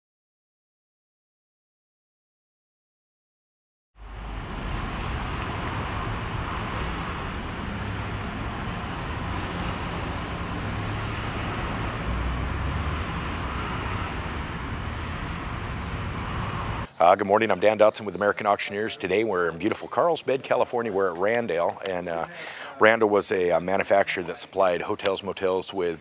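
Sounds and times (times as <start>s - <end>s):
low rumble: 4.0s - 16.9s.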